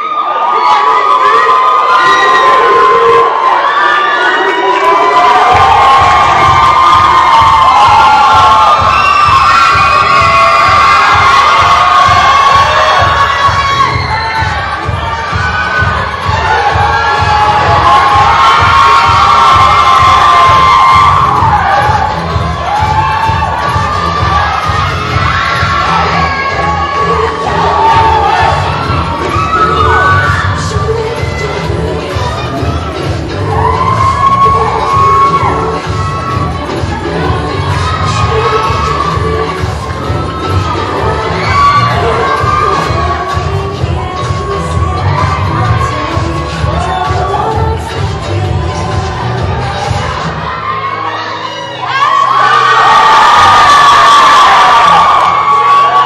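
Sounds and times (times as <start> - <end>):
audience screaming and cheering: 0.0 - 56.0
loud dance music: 0.0 - 56.0.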